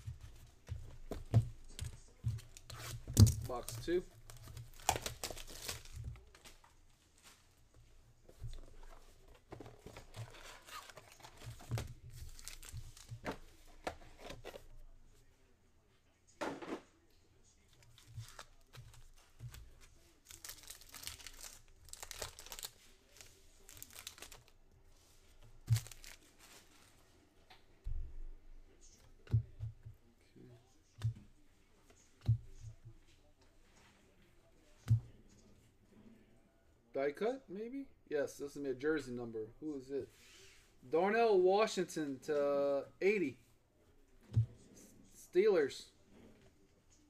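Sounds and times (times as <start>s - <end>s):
packaging crinkling and tearing: 2.5s - 6.4s, 12.2s - 13.2s, 20.2s - 24.5s, 25.6s - 26.6s.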